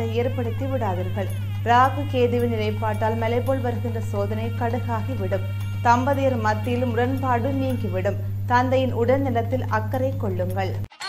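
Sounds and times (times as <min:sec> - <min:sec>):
steady low hum: 0:00.0 - 0:10.9
woman speaking: 0:00.0 - 0:10.9.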